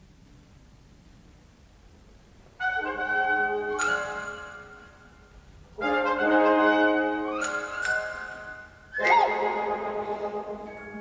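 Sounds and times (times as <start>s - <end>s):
orchestra brass chords: 2.6s - 3.8s, 5.8s - 7.3s
bright orchestral accent: 5.8s - 11.0s.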